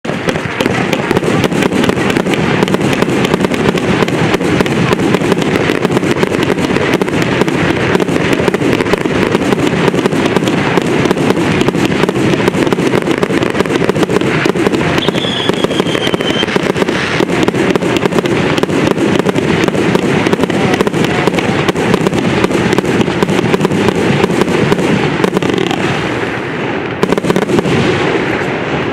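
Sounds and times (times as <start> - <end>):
firework pops and bangs: 0.0 - 28.9.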